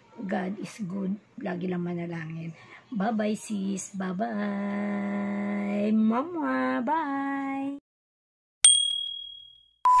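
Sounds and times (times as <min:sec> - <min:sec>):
bright electronic ding: 0:08.7 - 0:10.0.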